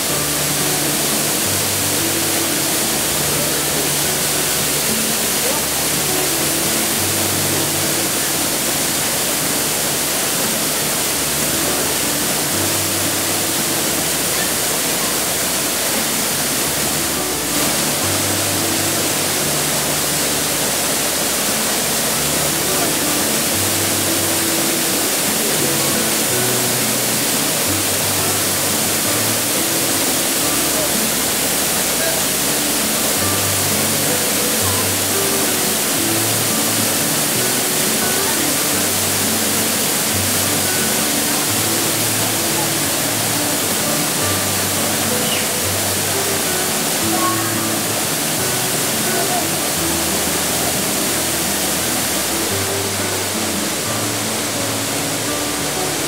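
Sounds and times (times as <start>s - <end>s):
slow low background music: 0.0s - 56.0s
waterfall roar: 0.0s - 56.0s.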